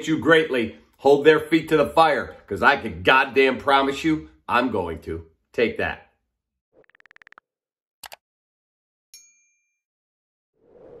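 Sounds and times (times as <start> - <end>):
bell ding: 9.2 - 9.8.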